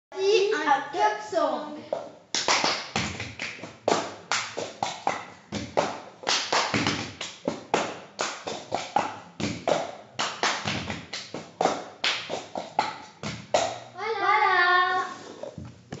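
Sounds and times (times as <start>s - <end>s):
hand claps: 2.0s - 13.9s
person speaking: 14.0s - 15.7s.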